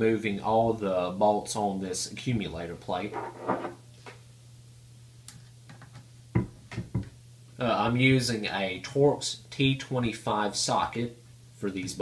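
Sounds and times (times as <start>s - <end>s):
tool knocking on tabletop: 6.4s - 7.1s.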